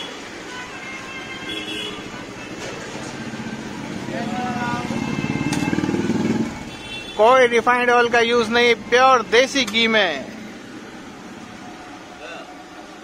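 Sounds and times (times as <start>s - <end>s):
street noise: 0.0s - 13.0s.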